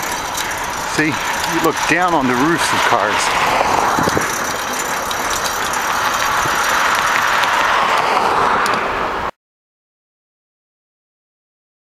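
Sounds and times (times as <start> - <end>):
bike riding rushing noise: 0.0 - 9.3.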